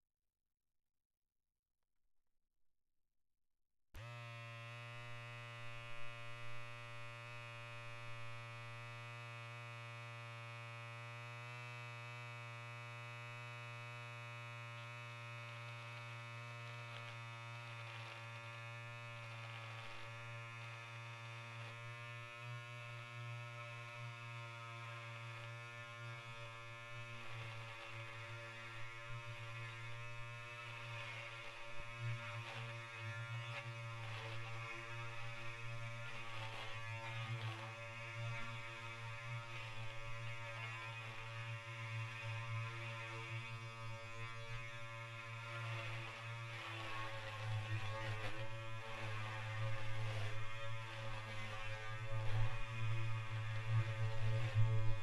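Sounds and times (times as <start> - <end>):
beard trimmer buzzing: 4.0 - 55.0.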